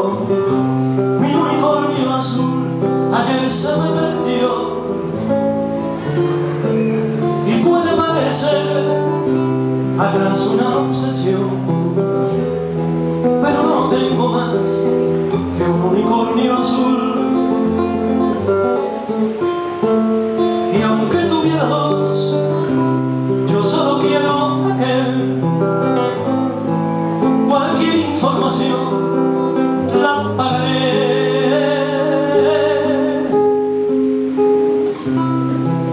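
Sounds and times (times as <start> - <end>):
man singing: 0.0 - 6.3, 7.1 - 19.1, 20.4 - 33.9
acoustic guitar strumming: 0.0 - 35.9.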